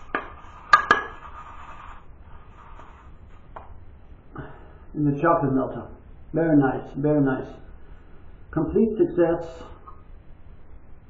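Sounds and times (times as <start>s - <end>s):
brush knocking metal bowl: 0.0s - 1.5s.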